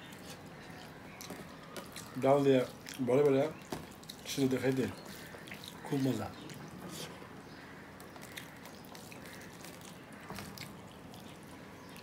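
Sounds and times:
fingers squishing food: 0:00.1 - 0:06.6.

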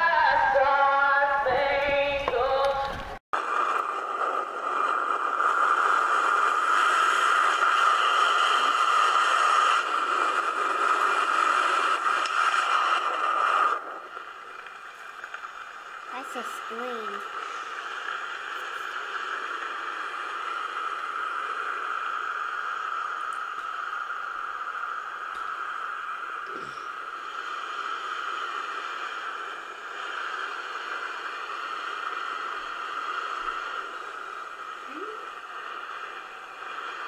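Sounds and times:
steady rushing hiss: 0:00.0 - 0:37.0.

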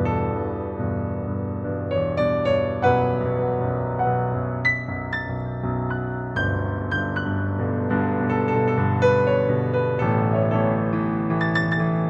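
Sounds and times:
solo improvised piano: 0:00.0 - 0:12.0.

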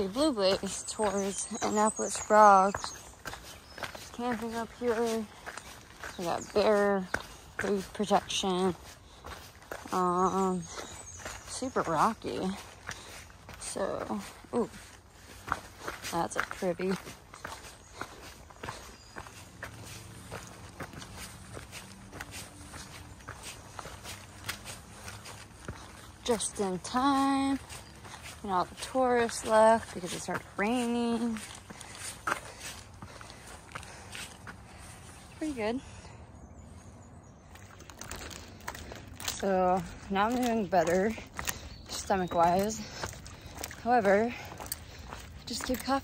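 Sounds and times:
footsteps on rocky dirt trail: 0:00.0 - 0:46.0.

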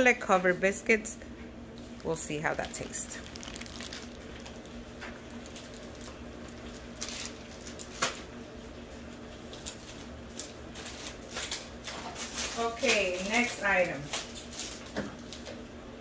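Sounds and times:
low background hum: 0:00.0 - 0:16.0
packages clicking and tapping: 0:02.0 - 0:08.2, 0:09.4 - 0:15.6.

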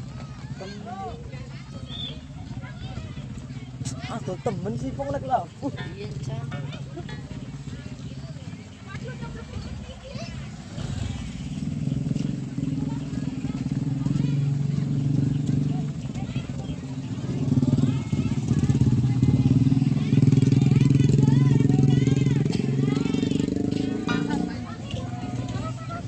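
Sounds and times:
small motorcycle engines passing: 0:00.0 - 0:26.0.

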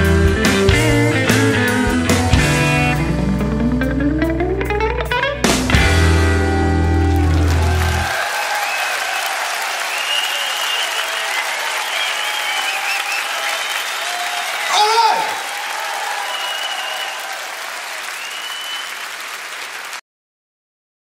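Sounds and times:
audience applauding and cheering: 0:05.9 - 0:20.0
whistles: 0:08.5 - 0:14.6, 0:15.9 - 0:19.2.

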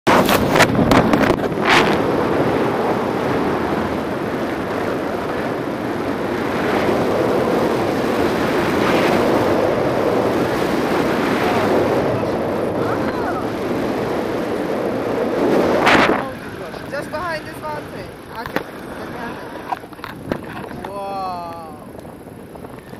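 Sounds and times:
wind rumbling on microphone: 0:00.1 - 0:22.9.

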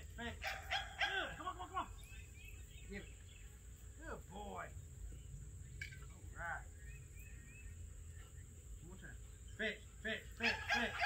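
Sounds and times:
faint bird chirps: 0:01.8 - 0:10.5.

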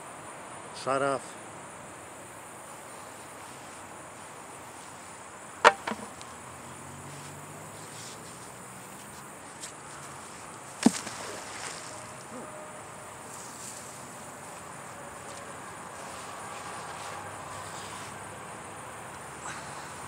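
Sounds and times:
insects chirring: 0:00.0 - 0:20.0
magnet splashing into water: 0:10.8 - 0:11.8.

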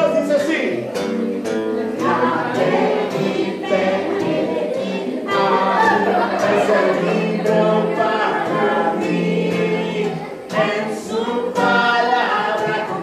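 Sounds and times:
several voices singing song: 0:01.0 - 0:13.0.

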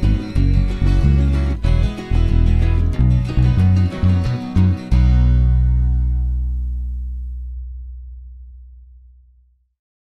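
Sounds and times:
music: 0:00.0 - 0:09.5
bass guitar low note ringing: 0:00.0 - 0:09.7.

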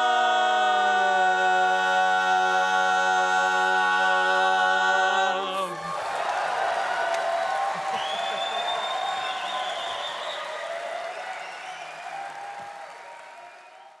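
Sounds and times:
audience applauding and cheering: 0:05.6 - 0:14.0
high whistle from crowd: 0:07.9 - 0:14.0.

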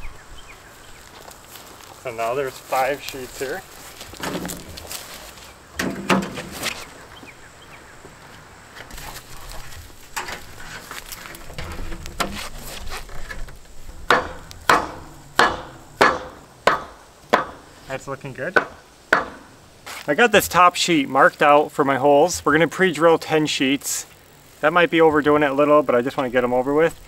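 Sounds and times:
metal sheets shuffling: 0:02.5 - 0:06.9
sharp knocks on metal sheets: 0:05.8 - 0:06.5, 0:14.0 - 0:17.7, 0:18.6 - 0:19.5.

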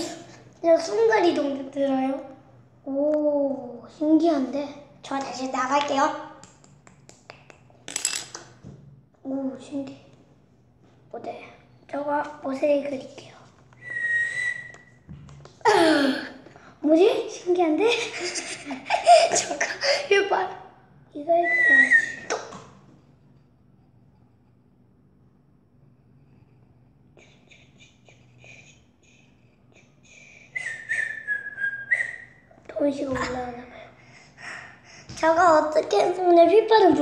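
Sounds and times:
child's voice: 0:00.0 - 0:06.3, 0:09.2 - 0:10.1, 0:11.1 - 0:13.5, 0:15.7 - 0:18.2, 0:19.2 - 0:22.4, 0:32.7 - 0:34.0, 0:35.1 - 0:37.0
person whistling: 0:13.8 - 0:14.9, 0:21.4 - 0:22.4, 0:30.5 - 0:32.4.

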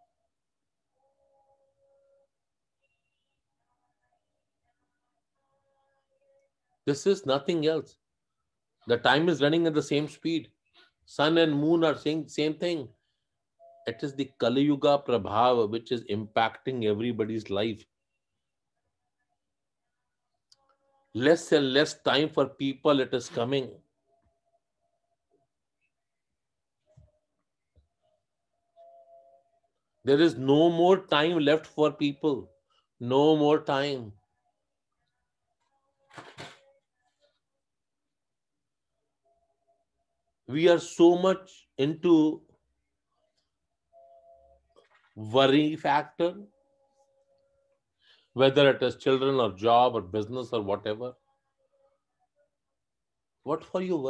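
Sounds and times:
faint steady tone: 0:00.0 - 0:07.2, 0:11.7 - 0:16.5, 0:22.8 - 0:33.4, 0:41.6 - 0:48.4
faint brief steady tone: 0:13.6 - 0:14.0, 0:26.8 - 0:29.9, 0:43.9 - 0:45.1.

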